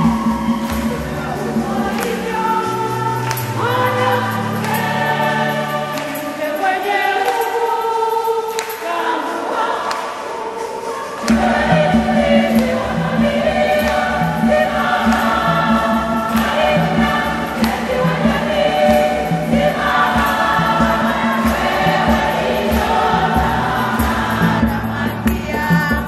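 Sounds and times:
electronic organ: 0.0s - 8.7s, 11.2s - 26.0s
women's choir singing a hymn: 0.0s - 26.0s.

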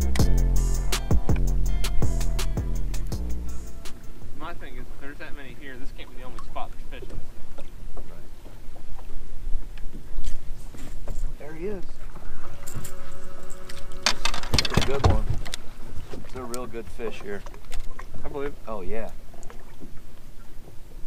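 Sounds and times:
multi-tone hum: 11.9s - 16.3s.

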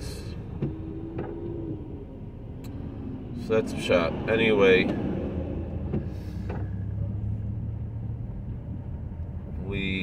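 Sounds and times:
car cabin rumble: 0.0s - 10.0s.

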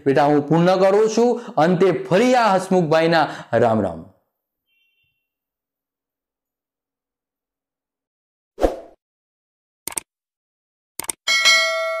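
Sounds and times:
bell ding: 11.3s - 12.0s.

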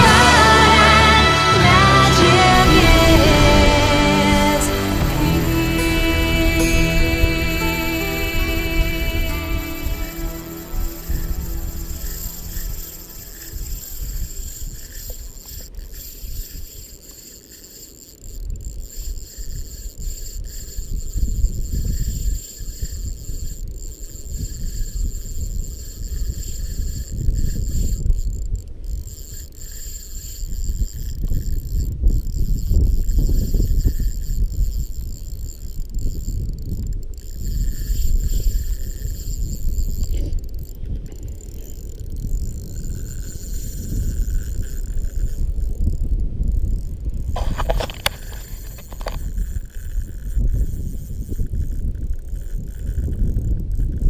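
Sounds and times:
wind buffeting microphone: 0.0s - 17.0s, 18.3s - 54.0s
fishing reel whirring: 0.0s - 54.0s.

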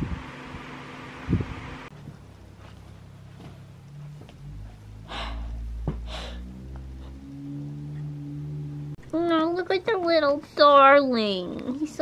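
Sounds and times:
low steady hum: 0.0s - 12.0s
breathy puffs: 4.7s - 7.2s.

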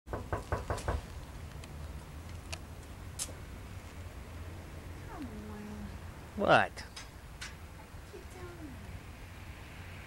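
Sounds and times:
knocks on a door: 0.1s - 1.0s.

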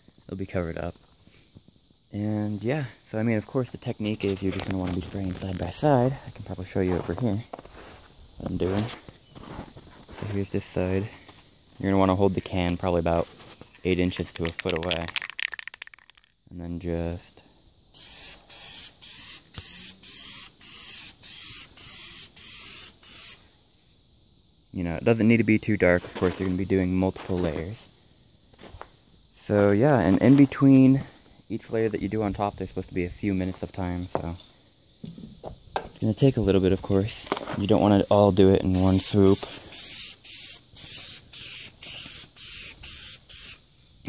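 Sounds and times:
spray paint can hissing: 14.4s - 16.3s, 18.0s - 23.4s, 38.7s - 43.6s.

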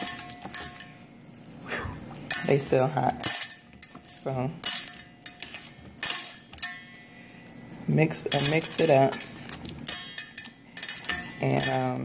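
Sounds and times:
metal bowl ringing: 0.0s - 12.0s.

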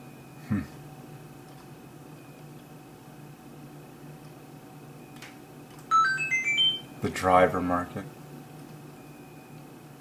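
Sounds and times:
electronic beeping jingle: 5.9s - 6.9s.

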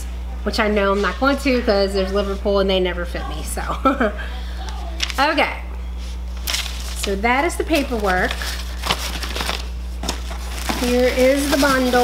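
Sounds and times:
paper crinkling and rustling: 4.9s - 5.3s, 6.3s - 12.0s.

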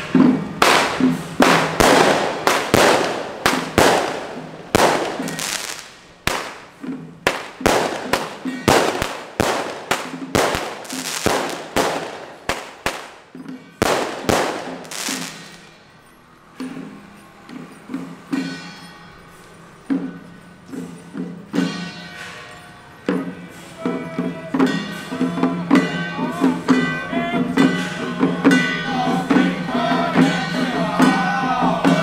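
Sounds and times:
firecrackers banging: 0.0s - 15.8s.

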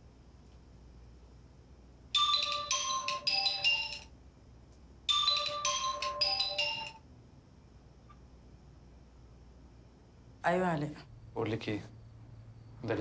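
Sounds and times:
smartphone ringtone: 2.2s - 4.1s, 5.1s - 7.0s.

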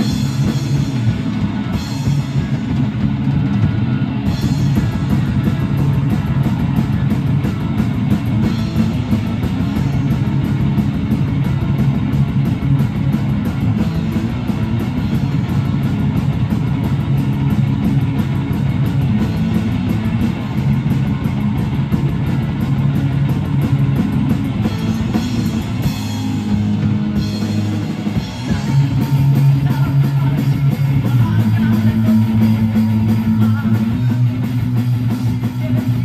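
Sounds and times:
distorted electric guitars: 0.0s - 36.0s
drum kit with rapid cymbal hits: 0.0s - 36.0s
electric bass: 0.0s - 36.0s.

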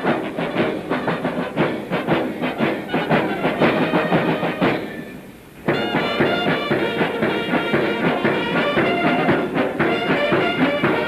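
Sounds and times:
film soundtrack hiss: 0.0s - 11.0s
snare and bass drums marching: 0.0s - 11.0s.

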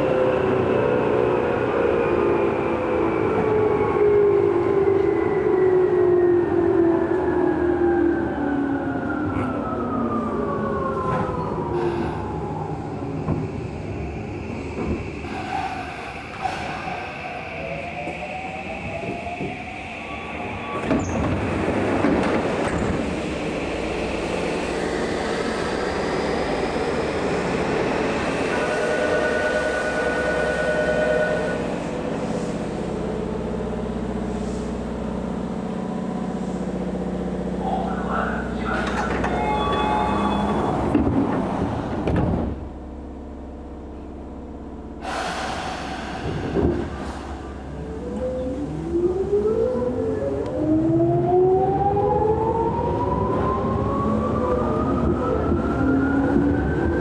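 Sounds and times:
train wheels on rail: 11.0s - 37.8s, 38.6s - 42.6s, 45.0s - 48.3s.

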